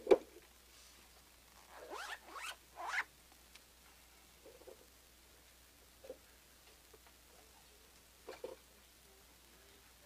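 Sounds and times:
zipper being pulled: 0:01.6 - 0:03.1.

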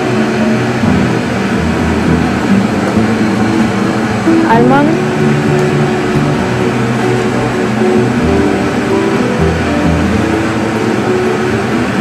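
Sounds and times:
mechanical hum: 0:00.0 - 0:12.0.

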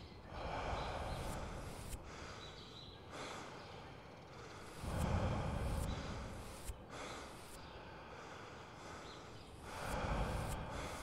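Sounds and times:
low rumbling noise: 0:04.7 - 0:07.1.

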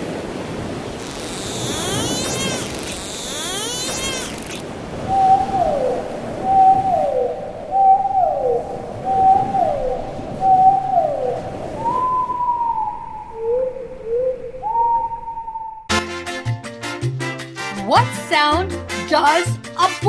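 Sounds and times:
dolphin whistle calls: 0:01.0 - 0:08.4.

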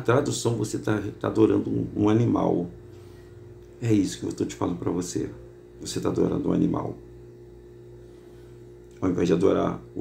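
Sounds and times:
faint steady low hum: 0:00.0 - 0:10.0.

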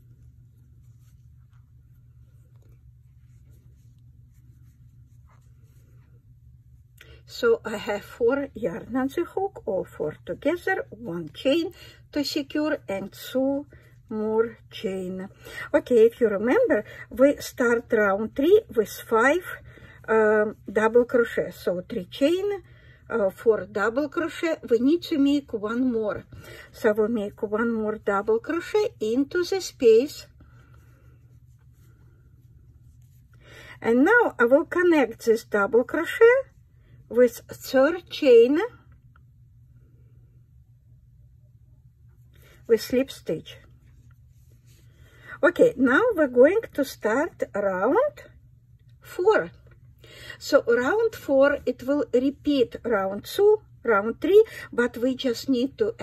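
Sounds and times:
yarn and crochet hook rustling: 0:00.0 - 0:07.0, 0:07.6 - 0:22.4
low steady hum: 0:00.0 - 0:56.0.

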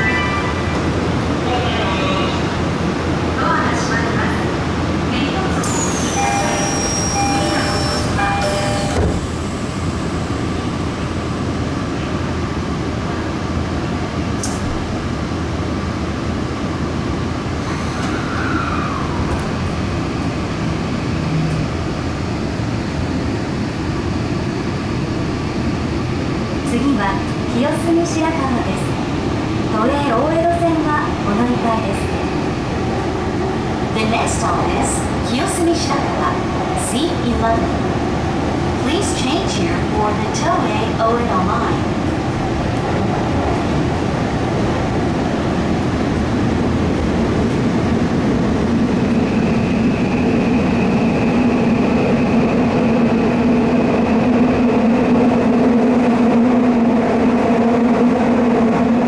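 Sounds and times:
subway car wheels rumbling: 0:00.0 - 0:59.0.

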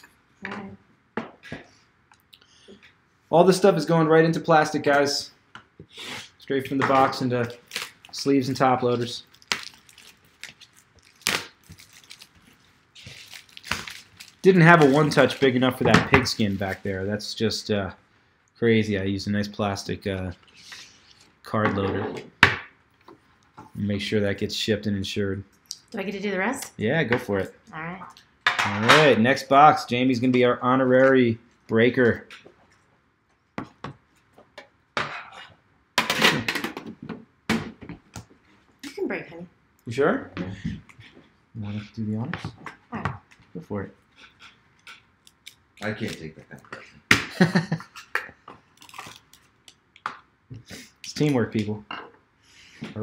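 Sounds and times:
shrink wrap crackling: 0:07.4 - 0:15.7, 0:48.7 - 0:50.0.

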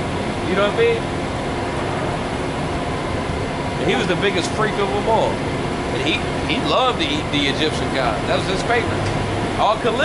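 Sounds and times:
buses passing close by: 0:00.0 - 0:10.0
city street traffic hum: 0:00.0 - 0:10.0.

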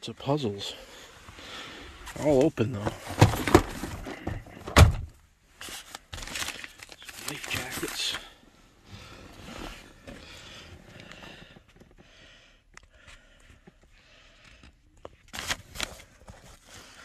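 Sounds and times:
rustling and shuffling objects: 0:00.5 - 0:12.2, 0:13.0 - 0:17.0.

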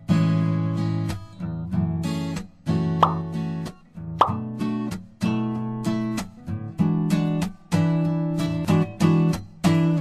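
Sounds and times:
sharp percussive hits: 0:03.0 - 0:03.3.

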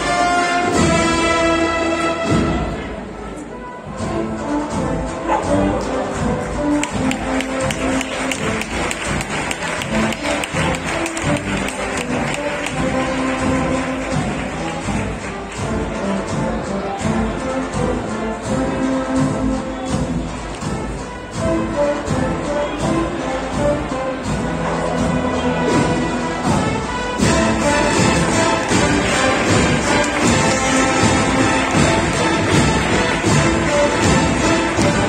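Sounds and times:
marching band playing: 0:00.0 - 0:35.0.

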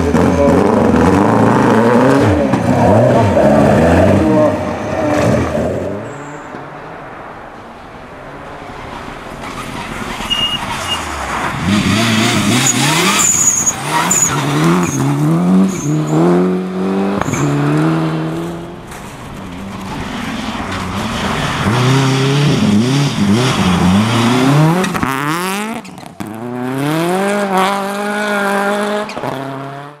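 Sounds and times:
rally car engines revving: 0:00.0 - 0:07.3, 0:08.3 - 0:30.0.

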